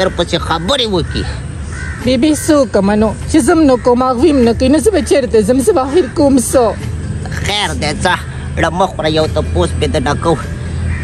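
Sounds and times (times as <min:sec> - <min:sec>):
man talking: 0:07.2 - 0:10.6.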